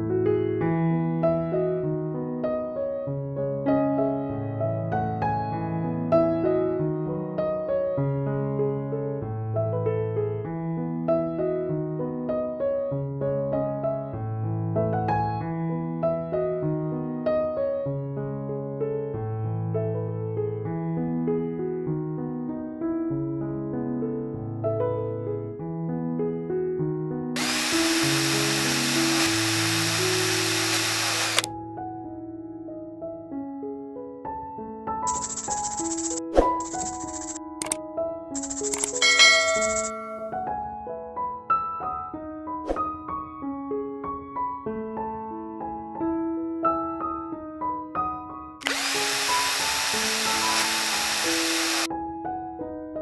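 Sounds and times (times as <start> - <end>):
gentle piano music: 0.0 - 35.1, 37.4 - 38.4, 39.0 - 48.6, 51.9 - 53.0
small power drill running: 27.4 - 31.5, 35.1 - 37.8, 38.4 - 40.0, 48.6 - 51.9.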